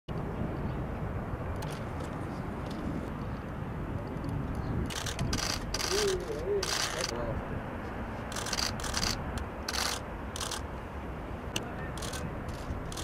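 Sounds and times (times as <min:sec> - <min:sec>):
faint distant voices: 0:11.5 - 0:12.8.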